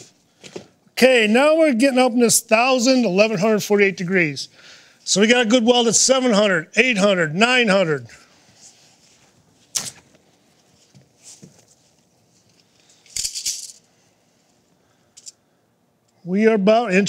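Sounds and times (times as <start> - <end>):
tape measure blade rattle: 12.9 - 13.8.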